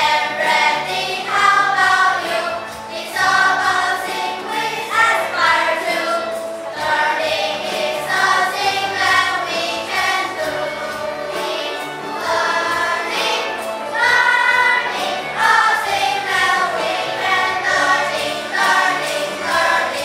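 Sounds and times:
children's choir singing: 0:00.0 - 0:20.0
instrumental accompaniment: 0:00.0 - 0:20.0.

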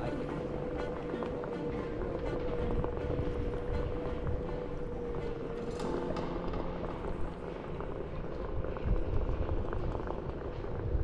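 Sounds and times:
tyre rumbling on paving: 0:00.0 - 0:11.0.

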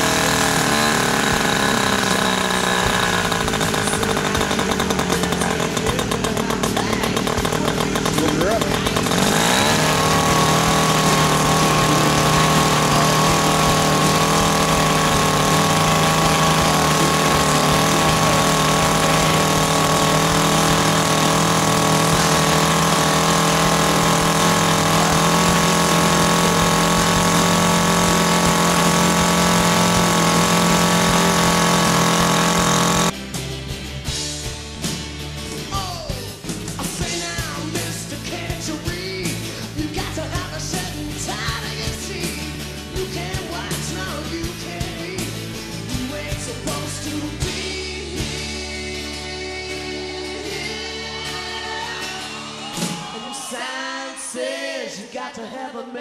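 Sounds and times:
model aircraft engine buzzing: 0:00.0 - 0:33.2.

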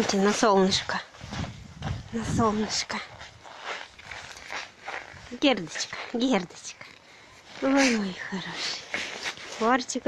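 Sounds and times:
footsteps on packed snow: 0:00.0 - 0:10.0.

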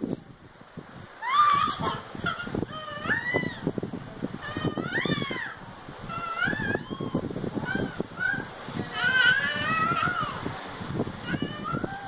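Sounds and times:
young child squealing: 0:01.2 - 0:03.7, 0:04.4 - 0:10.4, 0:11.2 - 0:12.0.

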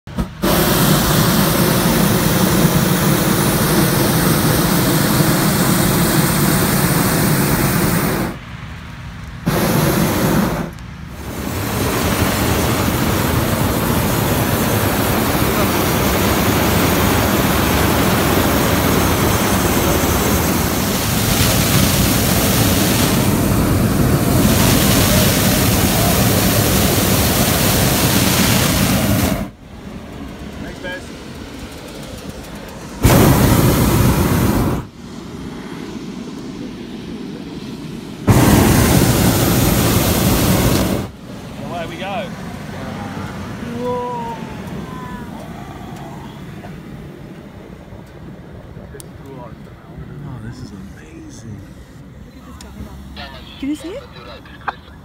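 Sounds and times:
propane burner roaring: 0:00.1 - 0:55.0.

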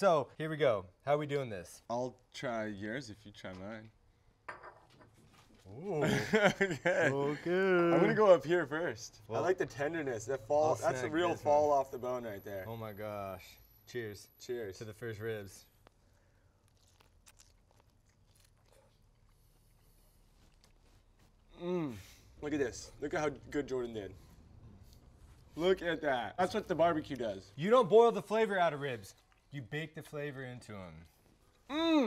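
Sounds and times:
people biting and chewing meat: 0:15.7 - 0:22.4, 0:29.0 - 0:30.1.

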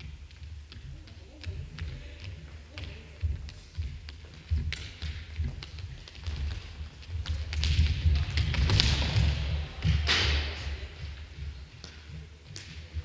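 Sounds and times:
running footsteps: 0:00.0 - 0:13.0.

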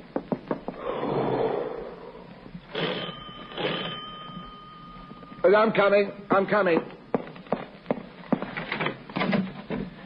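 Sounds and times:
doorbell ringing: 0:02.8 - 0:05.7.

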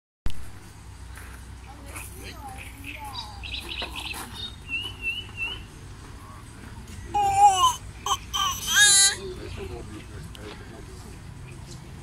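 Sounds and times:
baby squealing and babbling: 0:07.1 - 0:09.2.

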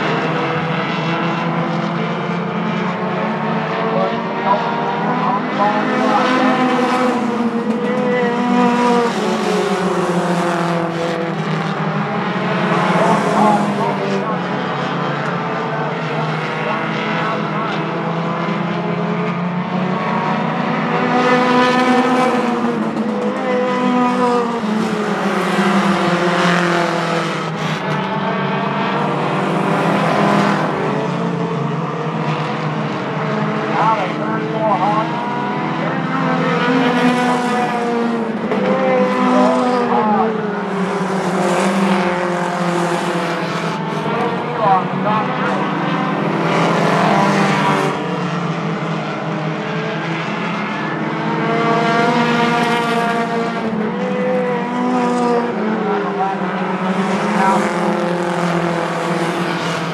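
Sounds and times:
race car engines passing: 0:00.0 - 0:59.9.

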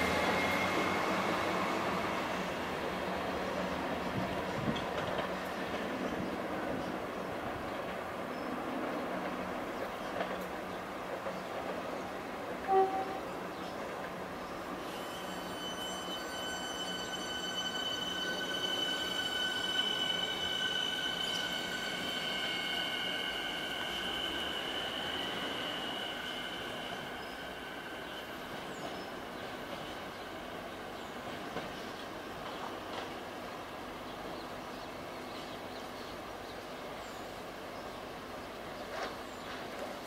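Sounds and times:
high squeal of steady tones: 0:00.0 - 0:02.8, 0:14.6 - 0:31.8
electric train running: 0:14.9 - 0:30.6.

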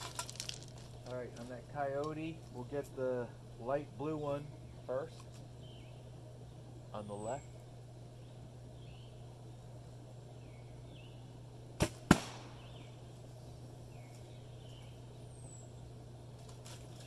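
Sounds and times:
faint bird chirps: 0:04.1 - 0:09.6.

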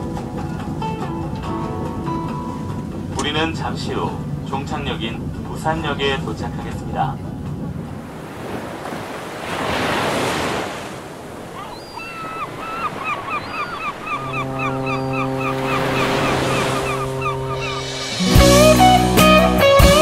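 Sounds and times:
ocean waves washing: 0:00.0 - 0:20.0
gulls crying: 0:11.0 - 0:20.0
long low ship's horn: 0:12.5 - 0:20.0.

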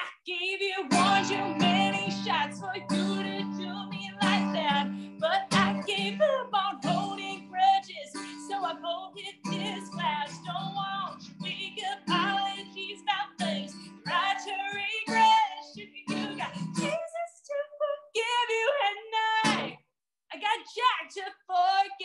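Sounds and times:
woman singing: 0:00.0 - 0:22.0
acoustic guitar strumming: 0:00.9 - 0:17.0, 0:19.4 - 0:19.8.

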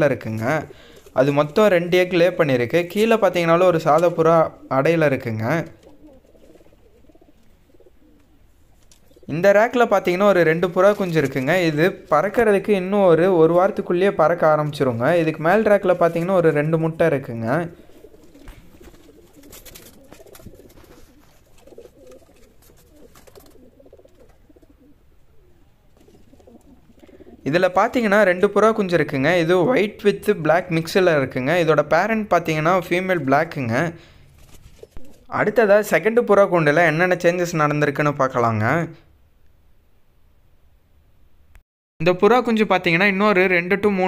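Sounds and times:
pigeons cooing: 0:00.5 - 0:01.2, 0:05.6 - 0:09.3, 0:17.8 - 0:27.5, 0:34.8 - 0:35.3.

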